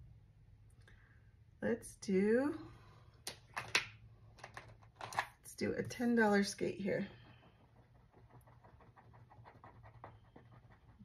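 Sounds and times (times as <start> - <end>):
pen scribbling on paper: 7.0 - 11.0.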